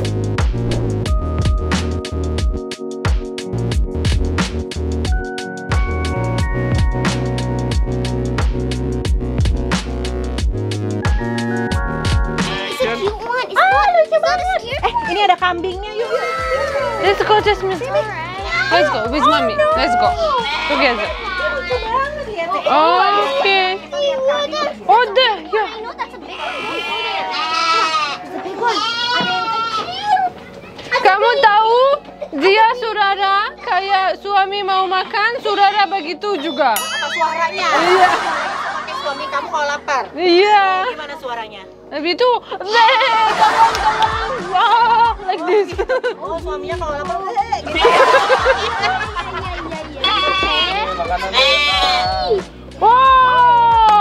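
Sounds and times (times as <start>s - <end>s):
goats bleating: 26.4s - 29.9s.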